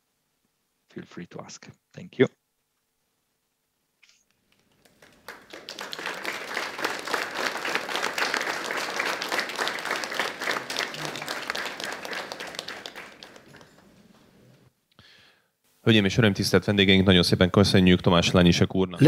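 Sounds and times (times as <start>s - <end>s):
audience applauding: 4.7s - 14.2s.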